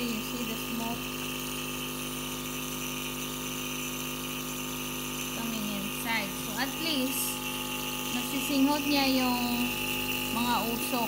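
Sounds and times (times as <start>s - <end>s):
nebulizer humming and hissing: 0.0s - 11.0s.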